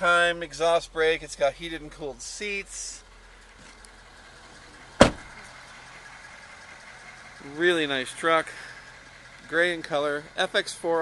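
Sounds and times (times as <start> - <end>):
truck door slamming: 5.0 - 5.4.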